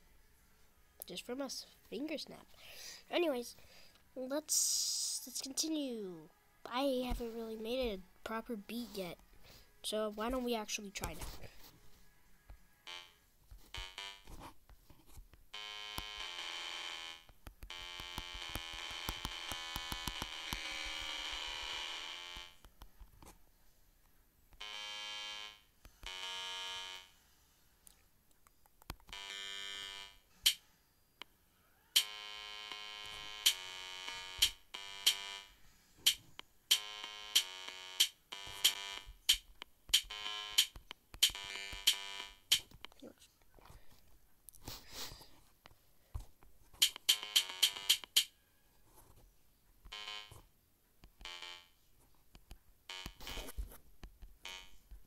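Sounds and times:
electronic drum clicks: 0:33.4 - 0:33.6, 0:34.4 - 0:35.2, 0:36.1 - 0:42.7, 0:46.8 - 0:48.3.

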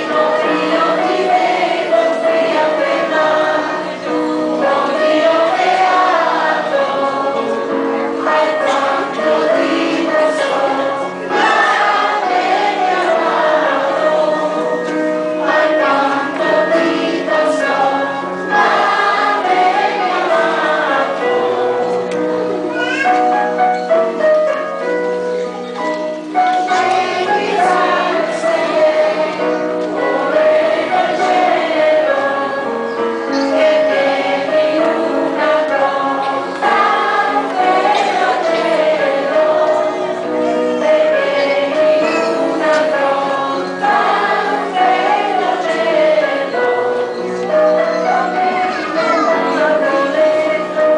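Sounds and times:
children's choir singing: 0:00.0 - 0:50.9.

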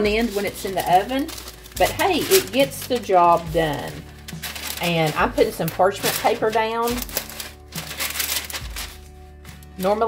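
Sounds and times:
background music: 0:00.0 - 0:10.0
parchment paper crackling: 0:00.0 - 0:10.0.

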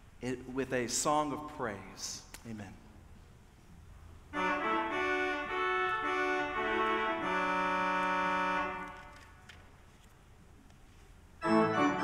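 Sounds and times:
pipe organ chord: 0:04.3 - 0:09.2, 0:11.4 - 0:12.0.

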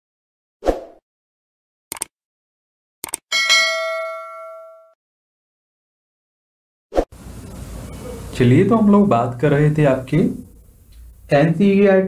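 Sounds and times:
quick double clicks: 0:01.9 - 0:02.1, 0:03.0 - 0:03.2
bright bell ding: 0:03.3 - 0:05.0.

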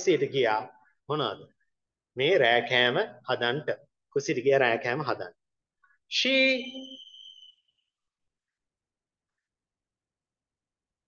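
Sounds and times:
thin high steady tone: 0:06.2 - 0:08.2.

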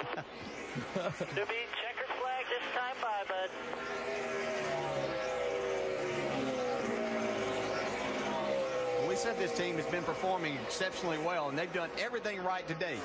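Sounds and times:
race car engine at full throttle: 0:00.0 - 0:13.0.

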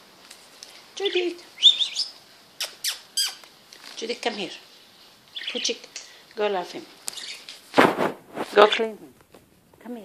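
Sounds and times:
parrots calling: 0:01.4 - 0:03.6, 0:05.3 - 0:06.2, 0:07.0 - 0:07.6.

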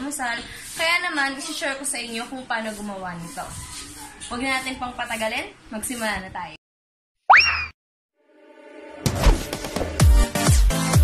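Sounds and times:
cartoon boing sound effect: 0:07.3 - 0:07.8.

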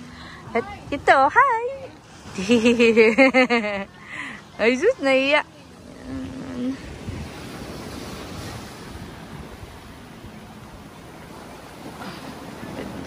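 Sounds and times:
small waves breaking on beach: 0:00.0 - 0:13.0
wind rumble on microphone: 0:04.8 - 0:13.0.

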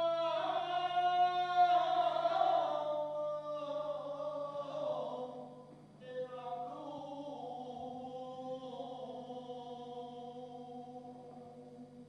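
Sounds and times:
choir singing a chant: 0:00.0 - 0:11.8.

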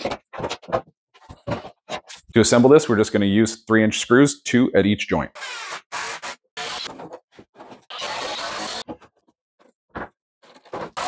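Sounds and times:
cordless drill driving a screw: 0:07.9 - 0:08.8.

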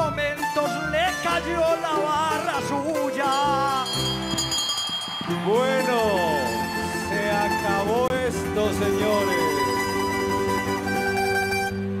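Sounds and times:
acoustic guitar band music: 0:00.0 - 0:12.0.

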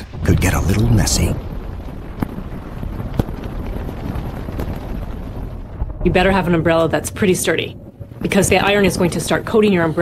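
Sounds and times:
low wind-like rumble: 0:00.0 - 0:10.0.

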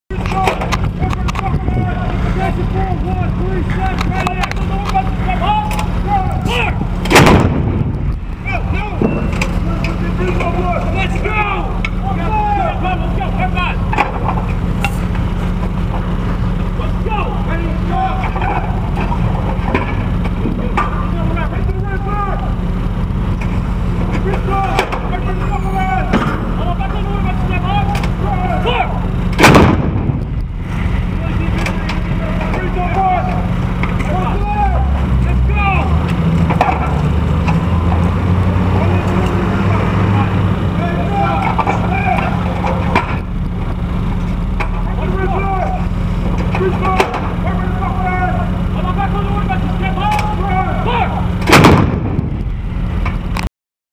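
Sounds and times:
crew voices: 0:00.1 - 0:07.0, 0:08.2 - 0:29.3, 0:30.6 - 0:51.5
howitzer blast: 0:00.1 - 0:37.0, 0:38.6 - 0:53.0
deep rumble: 0:00.1 - 0:53.5
steady low hum: 0:00.1 - 0:53.5.

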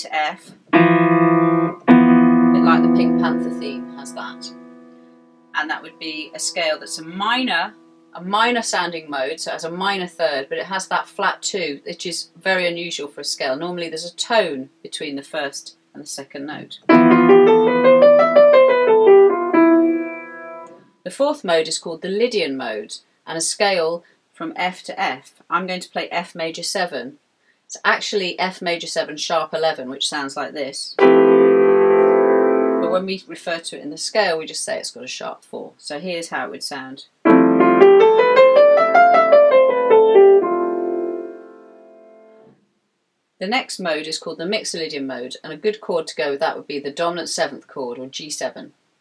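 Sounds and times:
piano chord and scale: 0:00.7 - 0:05.5, 0:16.9 - 0:20.7, 0:31.0 - 0:33.0, 0:37.2 - 0:42.4.

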